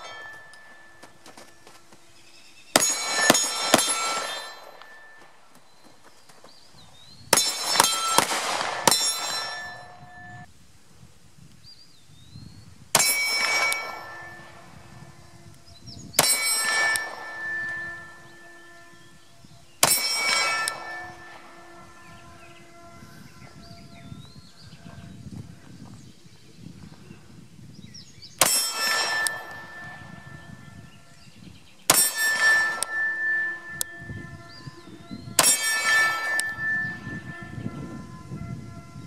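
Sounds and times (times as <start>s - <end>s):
bullets clanging on steel target: 0.0s - 6.1s, 7.2s - 10.5s, 13.0s - 23.7s, 28.4s - 38.2s.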